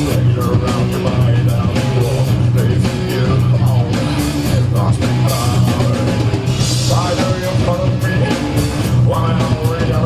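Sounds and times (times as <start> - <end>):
bass guitar: 0.0 - 10.0
drum kit: 0.0 - 10.0
electric guitars: 0.0 - 10.0
person singing: 0.0 - 10.0.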